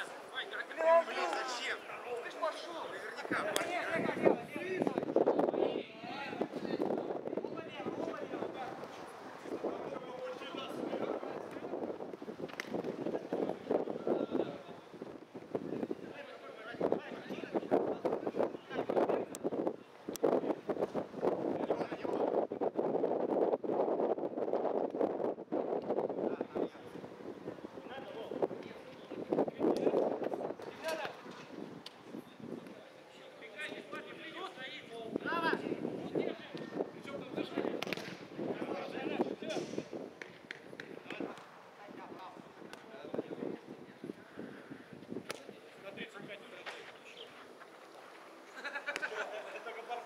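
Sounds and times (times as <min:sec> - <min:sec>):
wind buffeting microphone: 0:03.2 - 0:32.9, 0:33.9 - 0:46.4.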